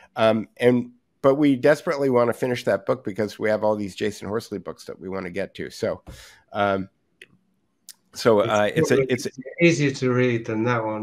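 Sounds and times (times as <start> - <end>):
person breathing: 6.0 - 6.5
man saying um: 8.2 - 10.0.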